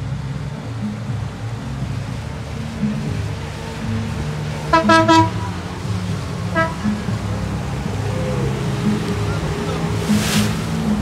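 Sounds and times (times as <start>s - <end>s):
low engine drone: 0.0s - 11.0s
short horn toot: 6.6s - 7.0s.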